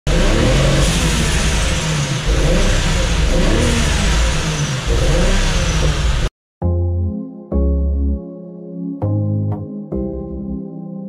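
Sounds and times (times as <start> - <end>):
car engine running loudly: 0.0 - 6.3.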